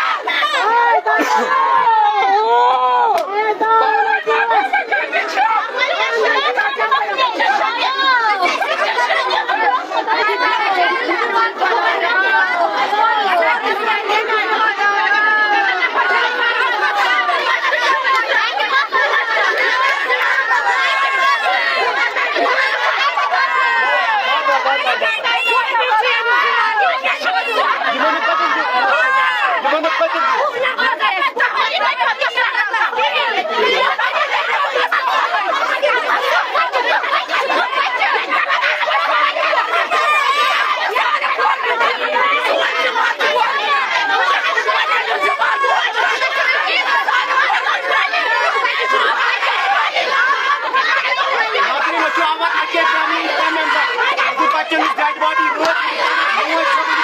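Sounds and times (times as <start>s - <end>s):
crowd talking and calling out: 0.0s - 57.0s.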